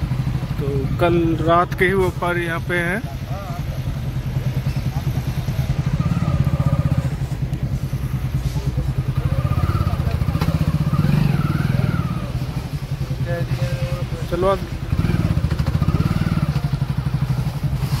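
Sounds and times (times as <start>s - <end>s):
engine running steadily: 0.0s - 18.0s
faint voices: 0.6s - 14.9s.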